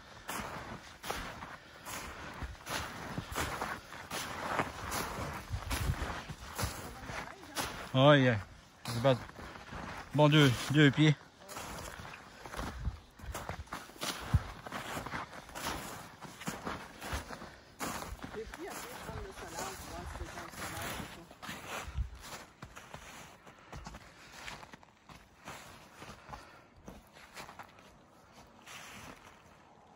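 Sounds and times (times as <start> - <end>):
footsteps crunching through snow: 0.0 - 29.9.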